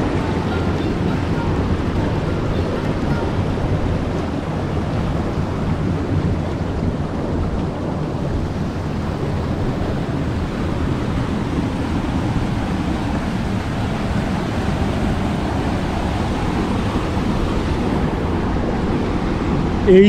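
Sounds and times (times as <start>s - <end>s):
river water flowing over rocks: 0.0s - 20.0s
wind buffeting microphone: 0.0s - 20.0s.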